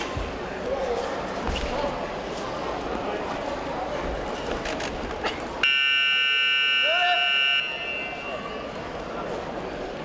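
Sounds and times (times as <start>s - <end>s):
voices in a hall: 0.0s - 10.0s
electronic buzzer tone: 5.6s - 7.9s.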